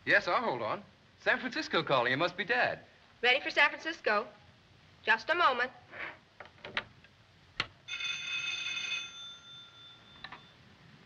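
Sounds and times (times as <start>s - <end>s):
telephone bell ringing: 7.9s - 10.6s.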